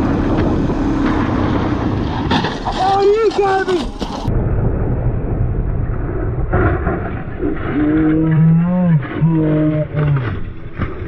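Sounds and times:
crash debris clattering: 0.2 - 4.5.

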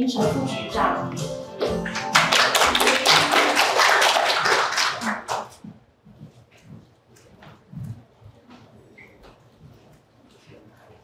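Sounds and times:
audience applauding: 1.8 - 5.6.

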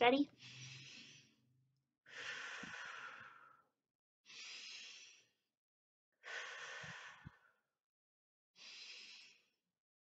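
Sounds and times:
woman breathing deeply: 0.4 - 5.4, 6.2 - 7.7, 8.6 - 9.6.

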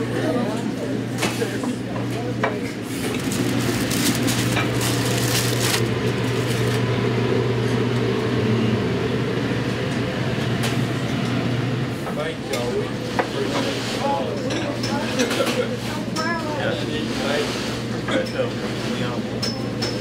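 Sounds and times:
room chatter: 0.0 - 20.0
aluminium foil crinkling: 3.0 - 6.8.

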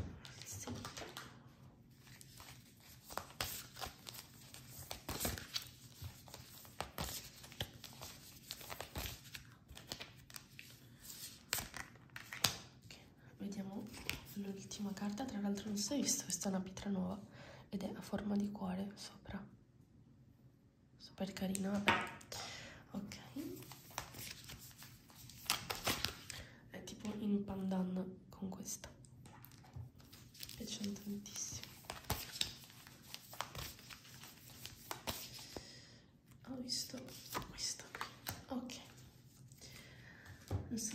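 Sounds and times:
cards being shuffled: 0.2 - 1.4, 2.0 - 12.7, 23.6 - 26.3, 29.3 - 35.6, 36.9 - 39.5.

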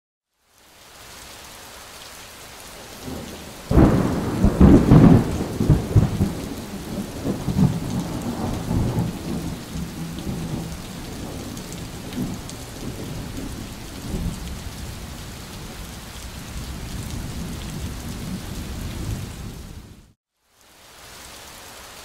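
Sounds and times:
steady rain: 0.3 - 22.0
rumbling thunderclap: 3.0 - 14.6.

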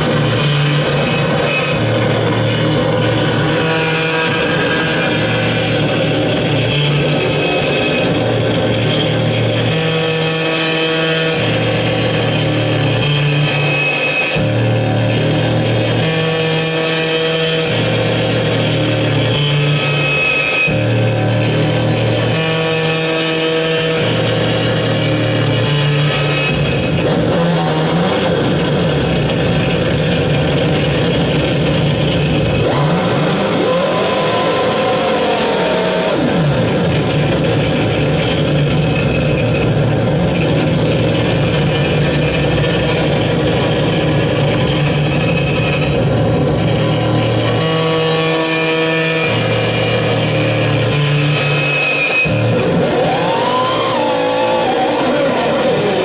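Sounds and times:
harsh distorted noise music: 0.0 - 56.0
low droning tones: 0.0 - 56.0
wavering pitch sweeps: 52.8 - 56.0.

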